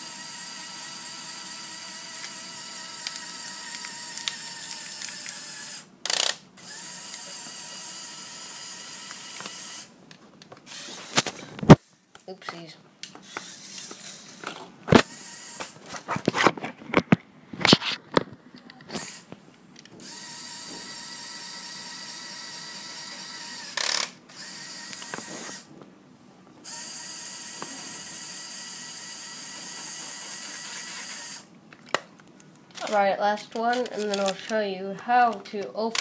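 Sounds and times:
electric motors and gears whirring: 0:00.0 - 0:16.7, 0:18.6 - 0:25.8, 0:26.6 - 0:31.5, 0:32.7 - 0:36.0.

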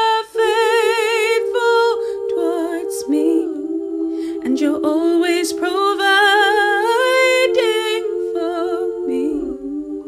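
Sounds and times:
layered female voices holding chord: 0:00.0 - 0:10.0.

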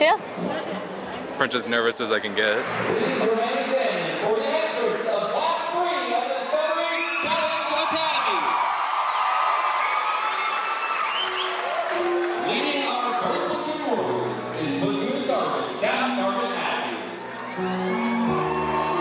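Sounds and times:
audience chatter and cheers: 0:00.2 - 0:19.0
electronic keyboard playing: 0:11.2 - 0:19.0.

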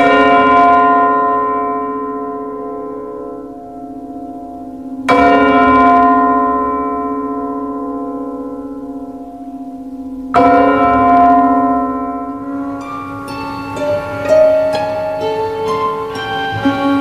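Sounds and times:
deep bell tolling: 0:00.0 - 0:17.0.

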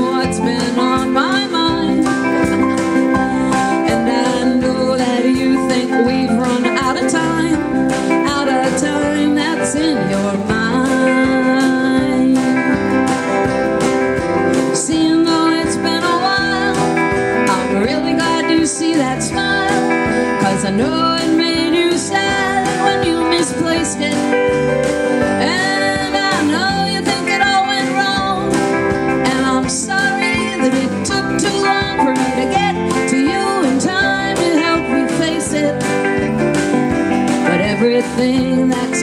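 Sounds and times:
live band playing: 0:00.0 - 0:39.0.

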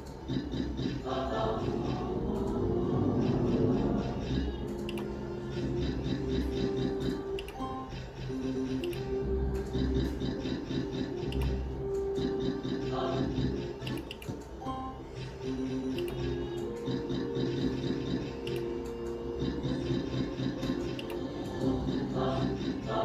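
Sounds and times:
slot machine electronic melody: 0:00.0 - 0:23.0.

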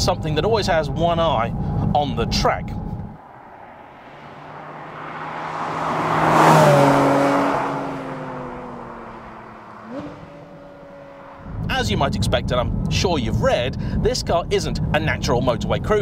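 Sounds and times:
sports car driving past: 0:02.7 - 0:12.0.

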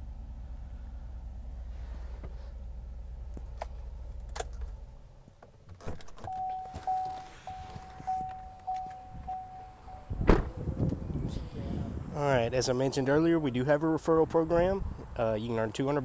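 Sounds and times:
low steady hum in truck cab: 0:00.0 - 0:16.0
vehicle warning chime dinging: 0:06.2 - 0:10.2
car door shutting thump: 0:10.1 - 0:10.9.

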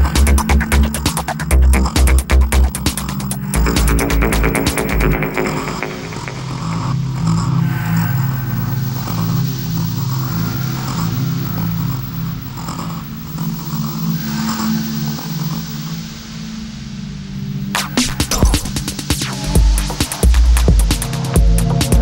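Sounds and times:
low synth bass pulsing: 0:00.0 - 0:07.6
hazy synth washes: 0:00.0 - 0:22.0.

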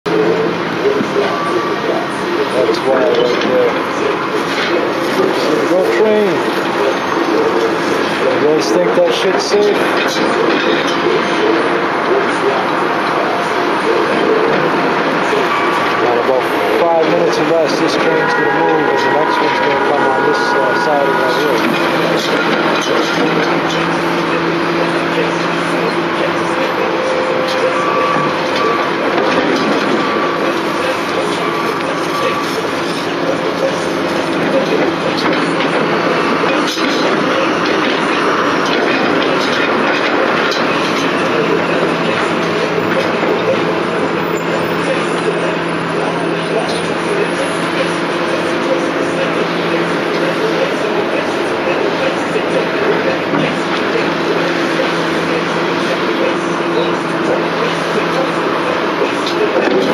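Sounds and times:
freight train rolling past: 0:00.1 - 0:59.9
wheels rattling on rail: 0:00.1 - 0:59.9
faint held tones: 0:15.3 - 0:23.2.

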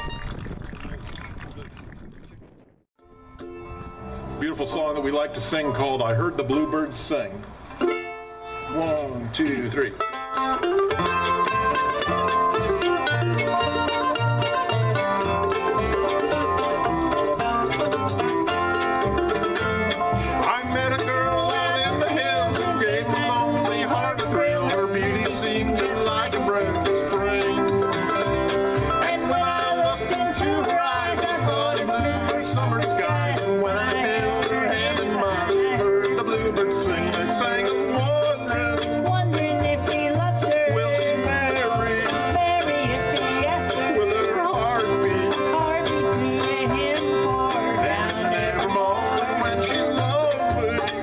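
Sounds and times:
upright bass pulse: 0:00.0 - 0:02.8, 0:10.7 - 0:51.0
bluegrass band playing: 0:03.0 - 0:51.0
banjo: 0:03.3 - 0:51.0.

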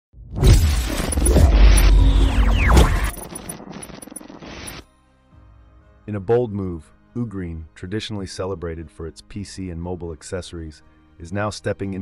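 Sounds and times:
shattering rushing noise: 0:00.3 - 0:04.8.

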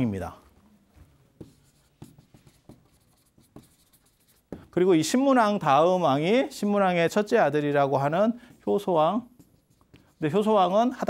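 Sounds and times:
chalk strokes on blackboard: 0:01.4 - 0:04.8, 0:08.5 - 0:11.0.

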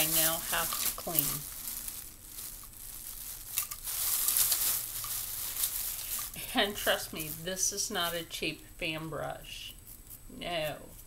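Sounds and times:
crinkling and rustling of brushes: 0:00.0 - 0:11.0.

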